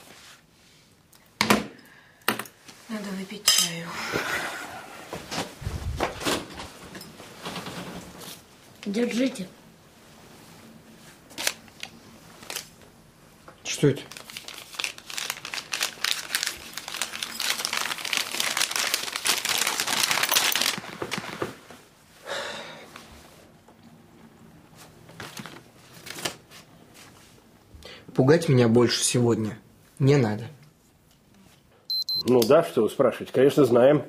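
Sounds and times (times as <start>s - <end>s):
paper rustling and crinkling: 11.1s - 12.8s, 13.9s - 21.9s, 24.8s - 27.2s.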